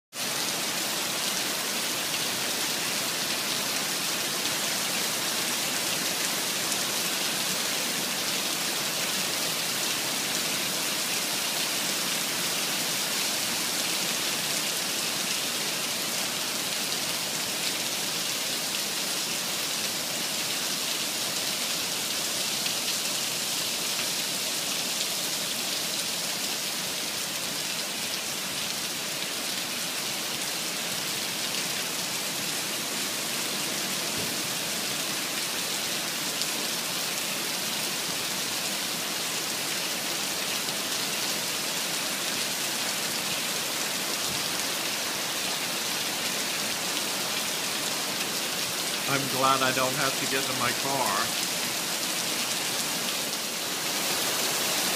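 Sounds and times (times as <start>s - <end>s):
heavy rain on asphalt: 0.1s - 54.9s.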